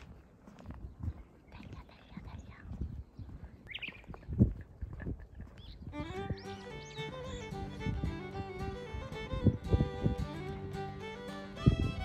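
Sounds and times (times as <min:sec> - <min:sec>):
footsteps on paved road: 0:00.0 - 0:12.0
music with strings and guitar: 0:05.9 - 0:12.0.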